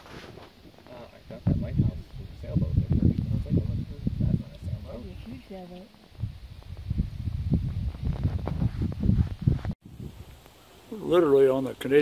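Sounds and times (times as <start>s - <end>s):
wind buffeting microphone: 1.1s - 10.4s.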